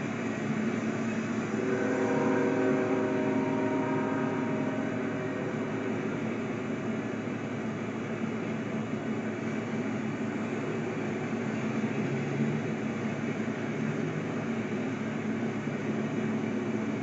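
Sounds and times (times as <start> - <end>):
locomotive air horn chord: 0.0 - 8.4
train rumble: 0.0 - 17.0.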